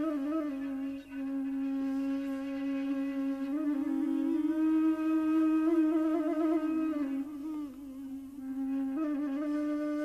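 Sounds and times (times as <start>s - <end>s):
bamboo flute long note: 0.0s - 10.0s.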